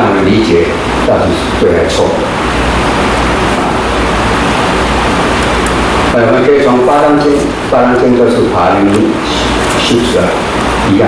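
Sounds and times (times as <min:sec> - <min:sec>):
loud rushing noise: 0:00.0 - 0:11.0.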